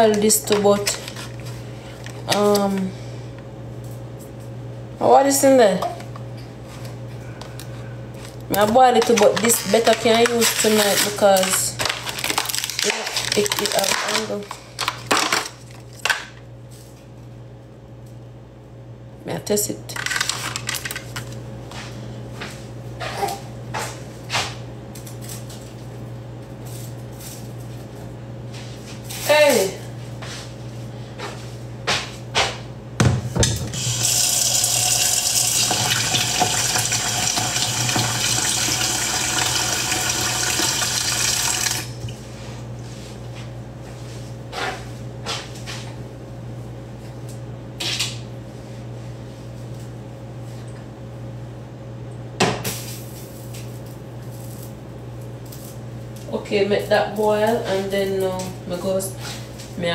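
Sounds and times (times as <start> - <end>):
steady low hum: 0.0 - 38.6
kitchen tap running: 33.7 - 42.0.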